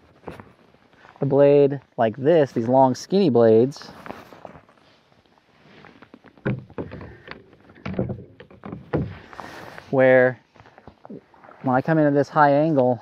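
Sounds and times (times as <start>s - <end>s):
paddle splashing in water: 5.5s - 9.9s
kayak paddle knocking: 6.4s - 9.6s.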